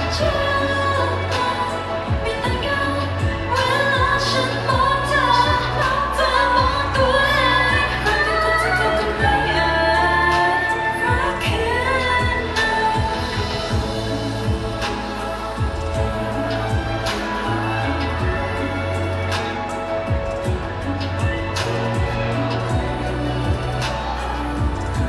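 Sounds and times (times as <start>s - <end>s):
bass line: 0.0s - 25.0s
person singing: 0.0s - 25.0s
kick drum beat: 13.0s - 14.8s.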